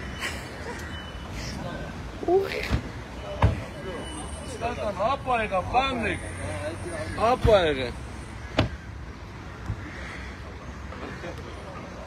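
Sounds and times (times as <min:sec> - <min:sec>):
car engines rumbling: 0:00.0 - 0:12.0.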